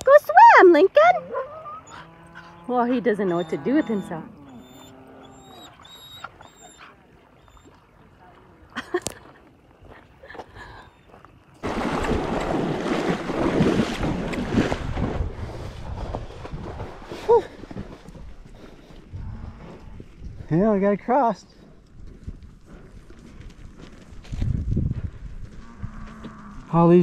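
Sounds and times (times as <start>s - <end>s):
horse splashing through water: 11.1s - 19.8s.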